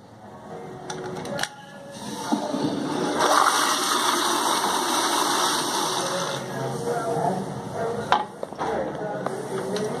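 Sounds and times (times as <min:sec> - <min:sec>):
toilet flushing: 0:02.0 - 0:06.4.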